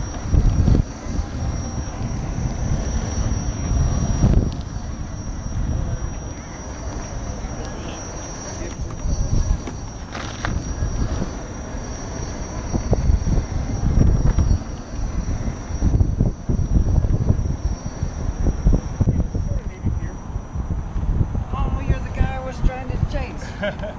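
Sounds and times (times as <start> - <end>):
thin steady high tone: 0.0 - 23.9
wind buffeting camera: 0.0 - 23.9.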